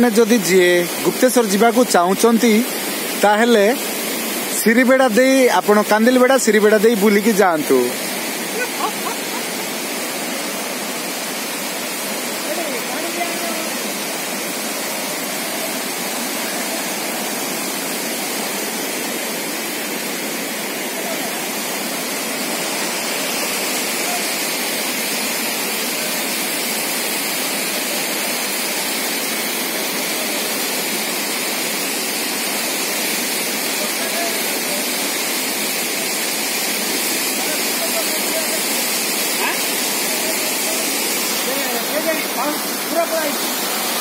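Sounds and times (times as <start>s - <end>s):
river rushing in flood: 0.0s - 44.0s.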